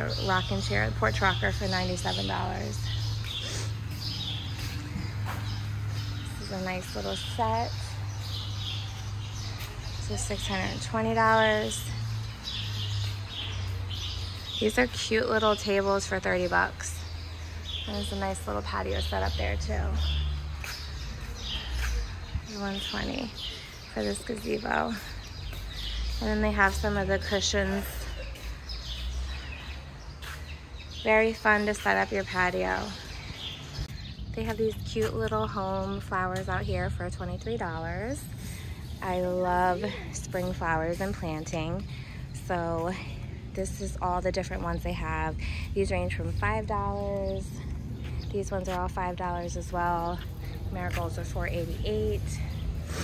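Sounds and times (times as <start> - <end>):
small birds chirping: 0.0 - 53.0.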